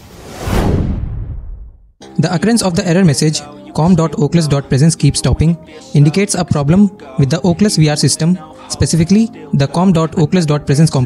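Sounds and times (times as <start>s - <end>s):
whoosh with low rumble: 0.0s - 1.9s.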